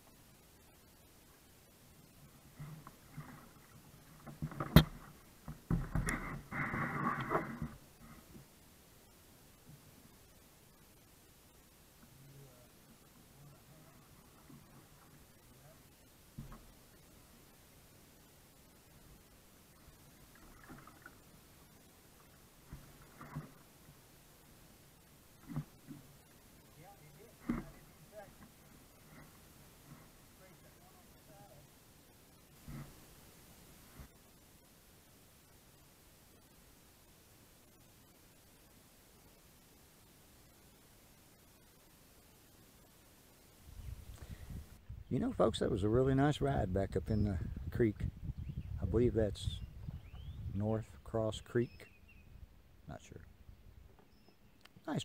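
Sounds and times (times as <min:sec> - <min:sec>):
paddle sloshing water: 0:02.3 - 0:08.4, 0:19.8 - 0:31.2.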